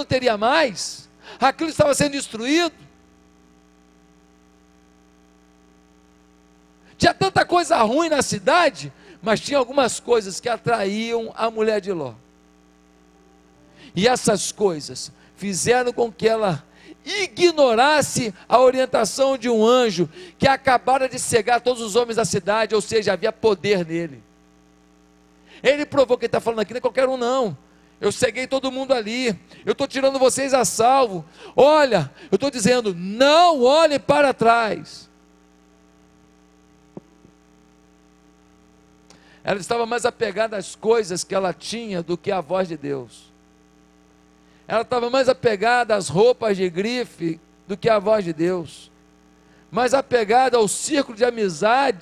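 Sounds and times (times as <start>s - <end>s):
man talking: 0.0s - 2.9s, 7.0s - 12.2s, 13.8s - 24.2s, 25.6s - 35.1s, 39.4s - 43.3s, 44.7s - 48.9s, 49.7s - 52.0s
faint steady hum: 0.0s - 52.0s.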